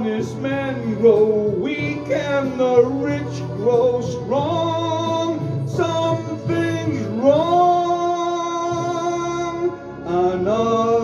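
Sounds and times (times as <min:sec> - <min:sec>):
backing track music: 0:00.0 - 0:11.0
man singing karaoke: 0:00.0 - 0:11.0.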